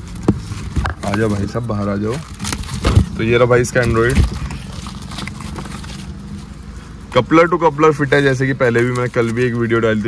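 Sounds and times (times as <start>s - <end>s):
foam and cardboard rustling: 0.0s - 7.3s, 7.9s - 10.0s.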